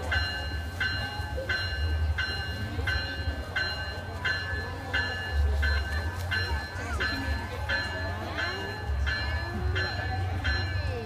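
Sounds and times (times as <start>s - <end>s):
locomotive bell ringing: 0.0s - 11.0s
train rumbling past: 0.0s - 11.0s.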